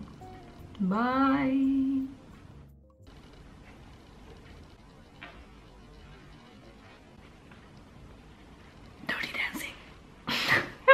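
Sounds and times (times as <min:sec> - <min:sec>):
woman whispering breathily: 0:09.1 - 0:09.8.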